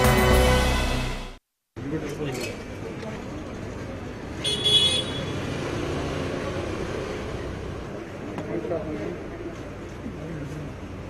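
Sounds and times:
car horn toot: 4.4s - 5.4s.

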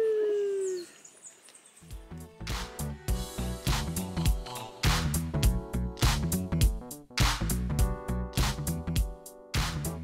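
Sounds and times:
person's drawn-out woo: 0.0s - 0.9s
music: 1.8s - 10.0s.

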